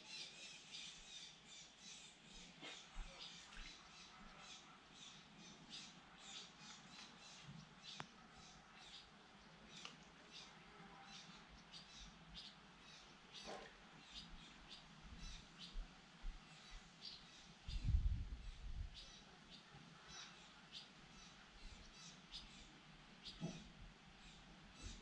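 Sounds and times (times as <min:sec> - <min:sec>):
small birds chirping: 0:00.0 - 0:25.0.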